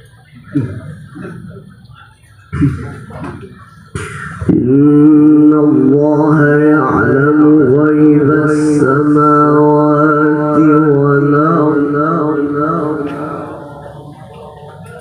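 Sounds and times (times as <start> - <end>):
man reciting melodically: 2.4 - 15.0.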